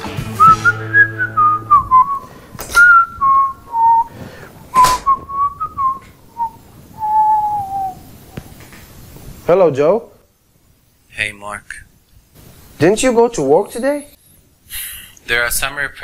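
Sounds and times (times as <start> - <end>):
person whistling a tune: 0.3 - 4.1, 4.7 - 8.0.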